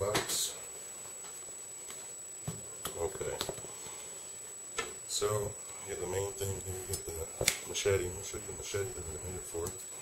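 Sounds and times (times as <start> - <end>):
thin high whine: 0.0 - 10.0.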